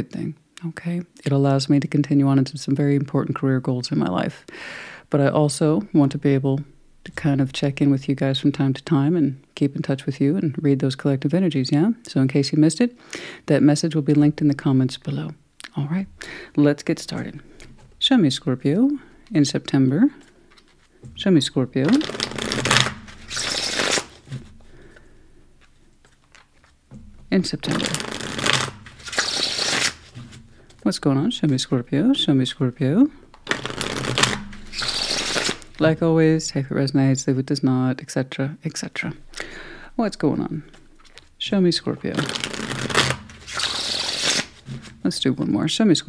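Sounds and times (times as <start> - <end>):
cards being shuffled: 20.1 - 25.0, 25.6 - 31.8, 33.3 - 35.8, 42.0 - 45.2.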